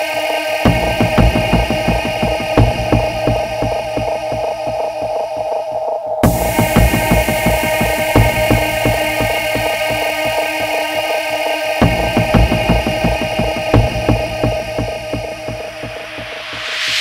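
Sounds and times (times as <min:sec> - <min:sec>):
drum and bass music: 0:00.0 - 0:17.0.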